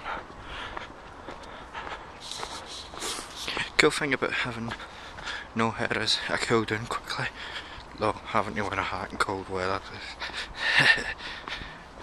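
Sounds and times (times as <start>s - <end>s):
footsteps on pavement: 0.0s - 12.0s
rushing hiss: 2.2s - 3.7s.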